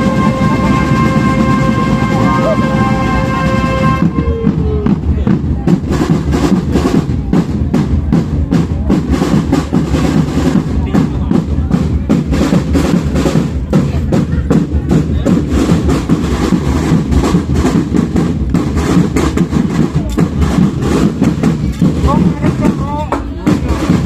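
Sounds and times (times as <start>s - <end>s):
bass drums beating: 0.0s - 24.0s
snare drums: 0.0s - 24.0s.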